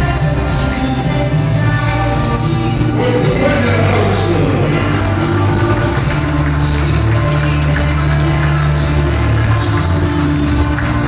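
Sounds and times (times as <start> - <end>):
loud dance music: 0.0 - 11.0.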